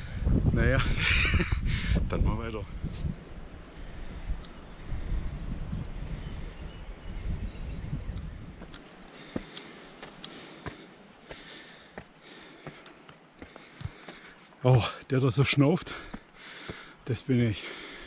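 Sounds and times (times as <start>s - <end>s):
wind rumble on microphone: 0.0s - 8.8s
footsteps on dirt trail: 8.2s - 18.0s
man panting heavily: 9.0s - 14.6s, 15.8s - 18.0s.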